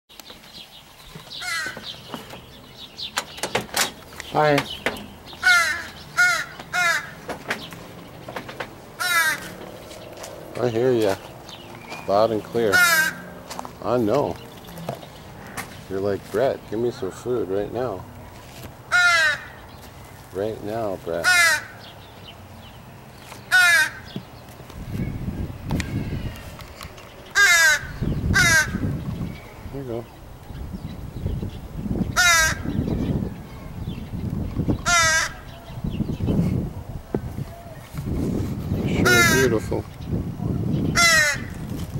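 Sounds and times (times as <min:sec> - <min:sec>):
crow cawing: 0:01.4 - 0:01.9, 0:05.4 - 0:07.2, 0:09.0 - 0:09.6, 0:12.7 - 0:13.4, 0:18.9 - 0:19.7, 0:21.2 - 0:21.9, 0:23.5 - 0:24.2, 0:27.3 - 0:28.9, 0:32.2 - 0:32.7, 0:34.8 - 0:35.6, 0:39.0 - 0:39.6, 0:41.0 - 0:41.5.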